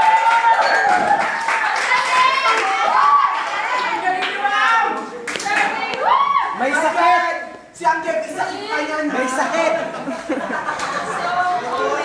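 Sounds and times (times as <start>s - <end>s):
group of people chattering: 1.6s - 12.0s.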